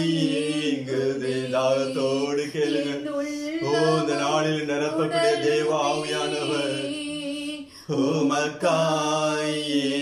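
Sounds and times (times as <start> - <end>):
man and woman singing: 0.0 - 10.0.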